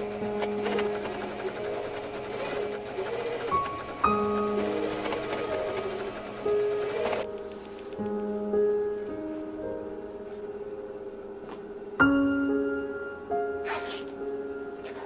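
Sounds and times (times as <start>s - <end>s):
sewing machine stitching: 0.0s - 7.3s
background music: 0.0s - 15.0s.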